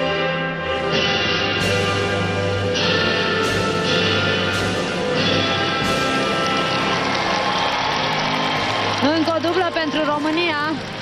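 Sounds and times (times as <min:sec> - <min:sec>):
orchestral anthem over sound system: 0:00.0 - 0:11.0.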